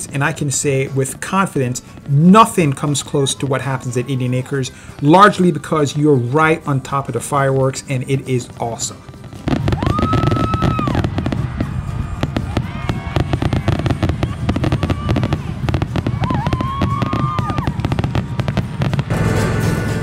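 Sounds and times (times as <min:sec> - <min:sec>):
fireworks bangs and crackling: 0:00.0 - 0:20.0
fireworks whistling: 0:00.0 - 0:20.0.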